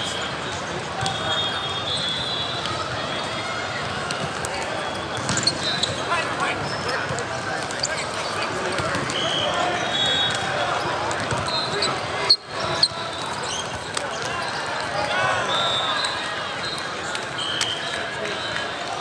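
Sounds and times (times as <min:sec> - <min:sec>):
many voices talking and calling: 0:00.0 - 0:19.0.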